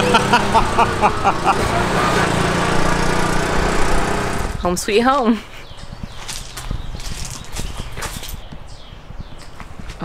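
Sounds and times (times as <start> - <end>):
auto rickshaw engine idling: 0.0 - 4.6.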